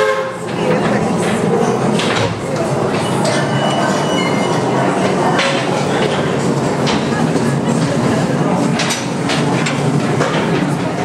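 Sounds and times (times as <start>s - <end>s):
rail cars rumbling on track: 0.0s - 11.0s
voices: 0.0s - 11.0s
wheels and couplings clanking: 0.4s - 11.0s.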